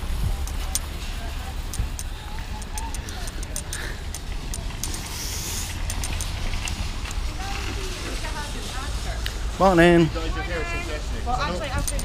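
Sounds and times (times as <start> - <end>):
faint voices: 0.0 - 12.0
light ticks: 0.4 - 1.0, 1.7 - 7.2.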